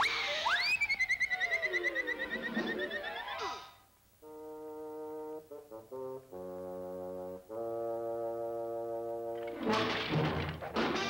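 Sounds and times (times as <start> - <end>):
cartoon whistle sliding and warbling: 0.0 - 3.7.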